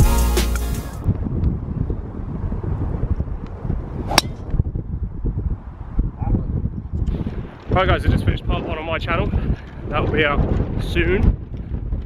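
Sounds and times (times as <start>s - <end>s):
wind buffeting microphone: 1.0s - 12.0s
golf club striking ball: 4.1s - 4.6s.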